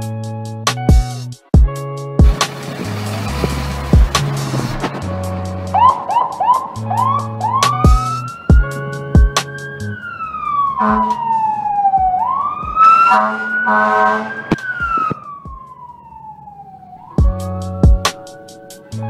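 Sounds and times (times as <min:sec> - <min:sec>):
background music with a beat: 0:00.0 - 0:13.6, 0:14.3 - 0:16.1, 0:17.1 - 0:19.0
siren wailing: 0:02.4 - 0:19.0.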